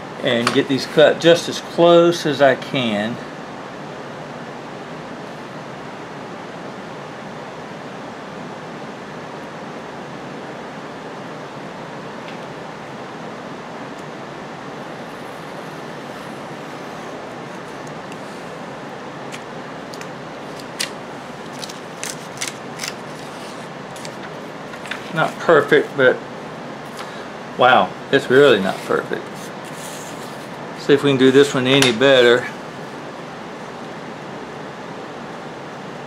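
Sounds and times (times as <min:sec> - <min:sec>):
steady background whir: 0:00.0 - 0:36.0
knife cutting paper: 0:19.3 - 0:25.4, 0:28.4 - 0:30.6.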